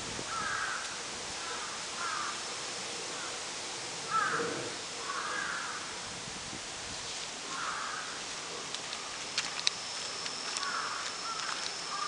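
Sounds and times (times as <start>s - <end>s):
steady outdoor hiss: 0.0s - 12.0s
crows cawing: 0.3s - 2.4s, 3.1s - 3.4s, 4.0s - 5.9s, 7.5s - 8.3s, 10.4s - 12.0s.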